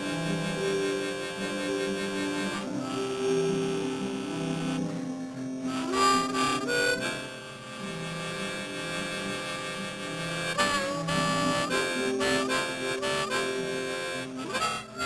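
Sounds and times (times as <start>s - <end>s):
harmonica playing slow tune: 0.0s - 15.0s.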